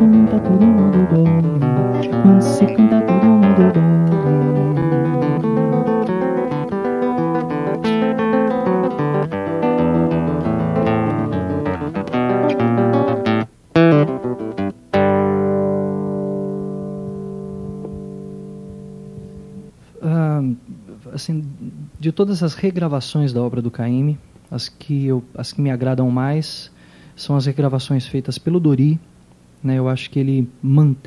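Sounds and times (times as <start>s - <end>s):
acoustic guitar samba: 0.0s - 19.7s.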